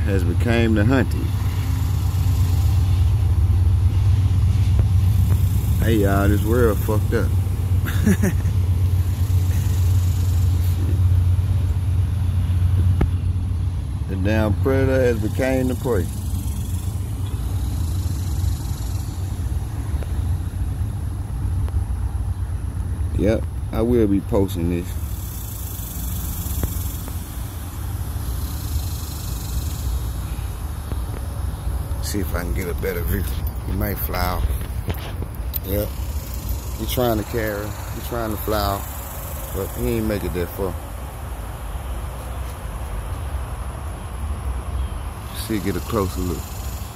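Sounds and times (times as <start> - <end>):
outdoor hiss: 0.0 - 13.2, 22.8 - 46.9
steady low rumble: 0.0 - 46.9
vehicle engine idling: 0.0 - 46.9.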